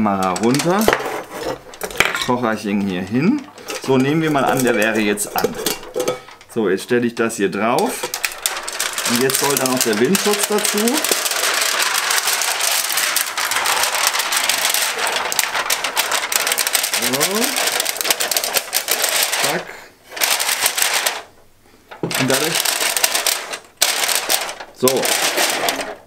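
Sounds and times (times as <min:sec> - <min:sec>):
metal windscreen crinkling and rattling: 0:00.0 - 0:06.4, 0:07.8 - 0:26.0.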